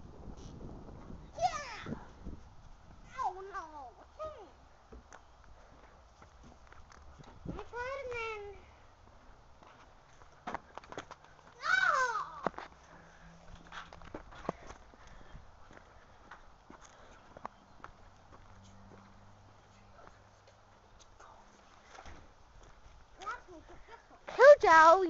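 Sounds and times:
high voice whooping and yelling: 11.6 - 12.5.

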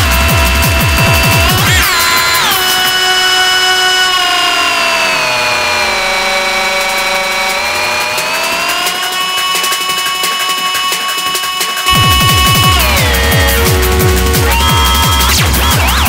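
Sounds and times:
synthesizer chord sliding in pitch: 0.0 - 16.0.

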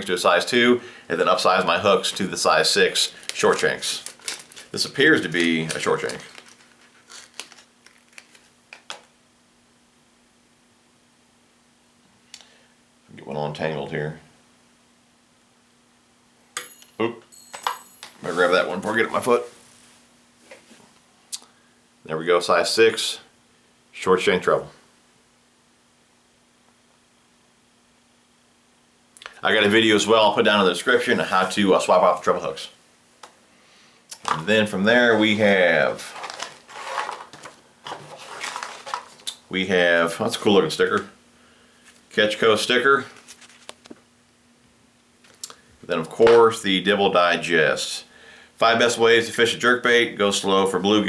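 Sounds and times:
metal hook clinking on hard surface: 16.6 - 18.2
hands rummaging through tackle box: 36.0 - 39.2.

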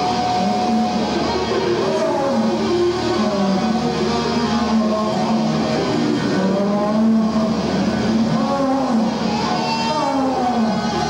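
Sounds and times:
distorted electric guitar bends: 0.0 - 11.0
heavy metal band playing live: 0.0 - 11.0.

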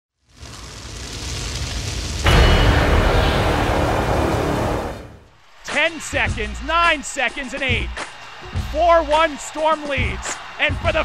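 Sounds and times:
rising rushing noise: 0.3 - 5.5
loud rumbling boom: 0.4 - 5.4.

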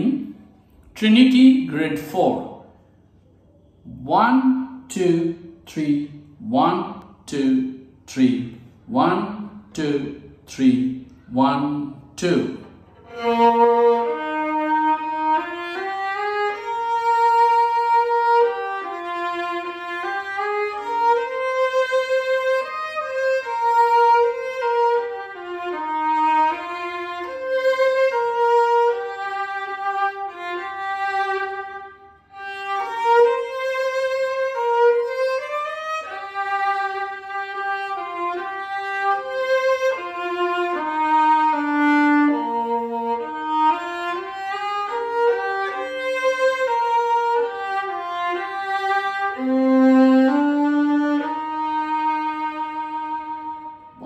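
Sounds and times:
solo violin melody: 10.6 - 54.0.

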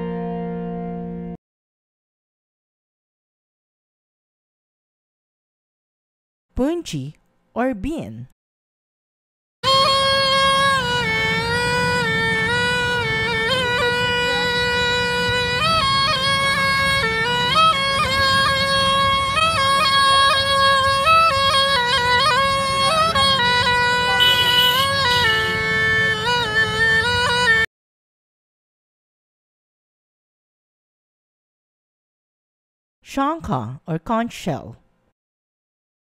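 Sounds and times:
gourd reed pipe melody: 9.6 - 27.7.

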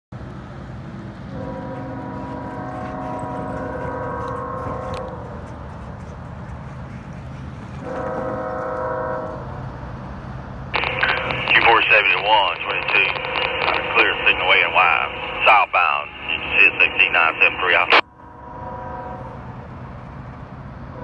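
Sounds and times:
locomotive air horn blasts: 1.3 - 5.4, 7.8 - 9.5, 18.3 - 19.6.

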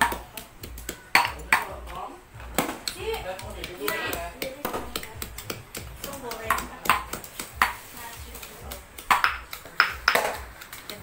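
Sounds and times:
cleaver chopping on cutting board: 2.6 - 7.8
people talking: 6.0 - 7.2, 7.8 - 9.0
clinks of bowls and utensils: 6.0 - 11.0.

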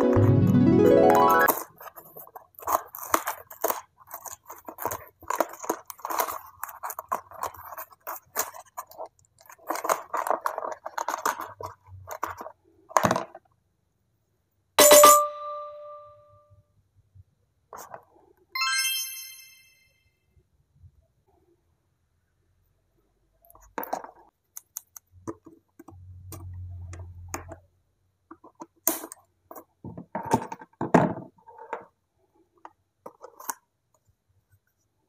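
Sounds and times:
sparkling chime sound effect: 0.0 - 1.5, 18.6 - 20.2
cardboard rustling and tearing: 1.5 - 12.5
short ding: 14.8 - 16.2.

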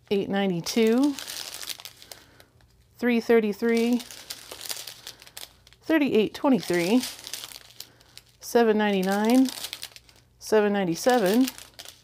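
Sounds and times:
plastic bags crinkling: 0.6 - 3.0, 3.6 - 12.0.

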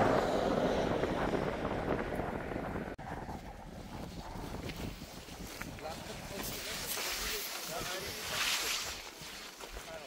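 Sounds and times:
wind noise on microphone: 0.0 - 10.0.

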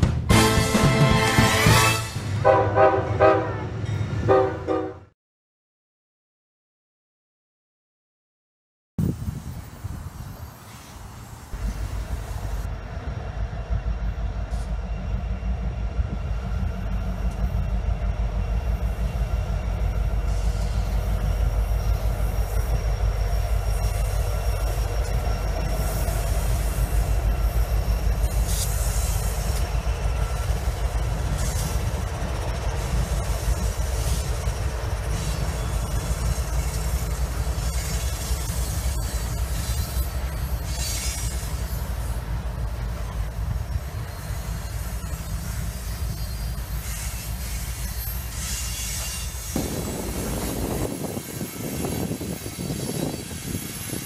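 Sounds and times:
freight train rumbling past: 0.0 - 5.1, 9.0 - 54.0
wheel squeal: 19.7 - 42.2, 43.0 - 49.6, 50.3 - 54.0.

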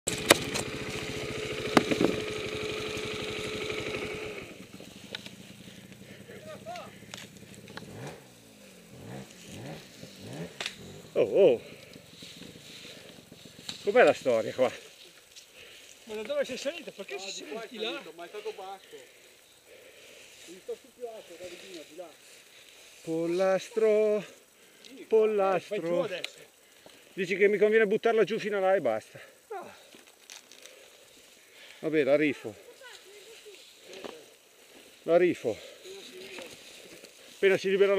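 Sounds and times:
motorcycle engine revving: 0.0 - 14.7
dry leaves rustling: 0.1 - 11.0, 32.6 - 37.9
motorcycle crash knock: 1.6 - 2.4
man calling out: 6.2 - 7.1, 11.1 - 11.7.

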